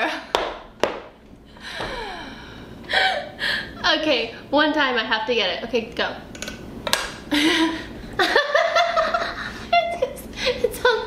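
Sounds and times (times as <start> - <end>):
woman laughing breathily: 1.6 - 3.8, 7.3 - 10.7.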